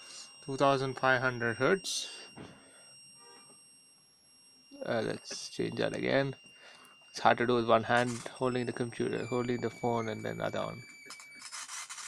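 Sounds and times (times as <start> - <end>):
high-pitched electronic tone: 4.6 - 11.8.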